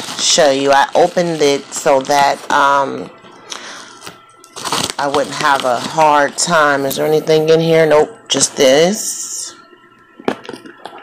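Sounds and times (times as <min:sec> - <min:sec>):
padded paper envelope crinkling: 0:00.0 - 0:02.5, 0:04.6 - 0:07.0.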